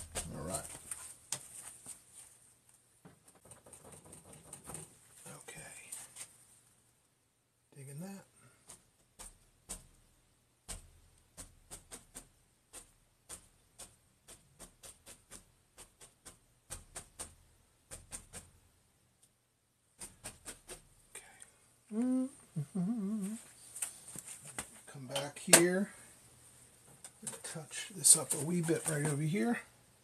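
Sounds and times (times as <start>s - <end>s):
paintbrush dabbing on canvas: 10.7s - 18.5s
man humming: 21.9s - 23.4s.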